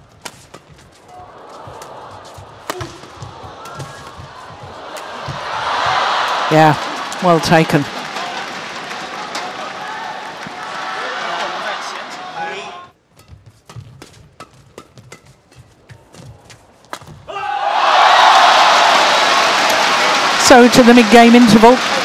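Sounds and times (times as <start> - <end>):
crowd cheering and applause: 1.1 - 12.9, 17.3 - 22.0
hushed crowd: 1.1 - 12.9
racket strikes on shuttlecock: 2.6 - 4.3, 13.1 - 17.3.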